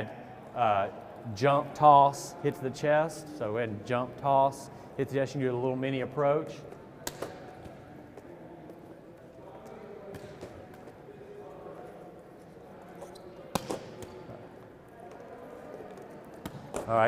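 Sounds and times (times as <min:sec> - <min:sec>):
murmur of many voices: 0:00.0 - 0:17.0
volleyball hand slap: 0:07.0 - 0:07.6, 0:13.5 - 0:14.2
ball contacts: 0:07.0 - 0:08.8, 0:09.5 - 0:11.2, 0:12.9 - 0:17.0.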